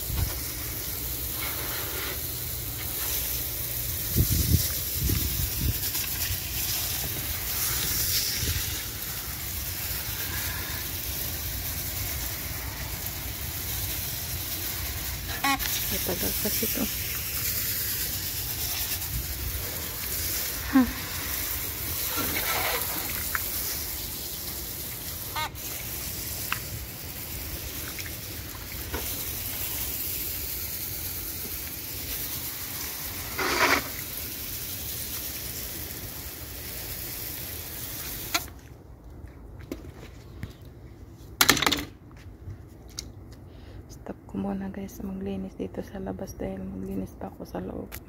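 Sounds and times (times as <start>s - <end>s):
hose spraying water on tiles: 0.0s - 38.6s.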